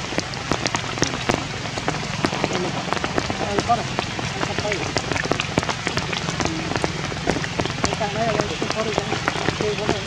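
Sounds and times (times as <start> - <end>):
rain falling on leaves: 0.0 - 10.0.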